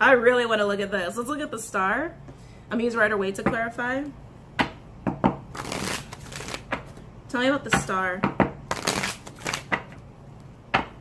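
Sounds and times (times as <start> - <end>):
cards shuffling: 5.5 - 7.0, 8.7 - 9.9.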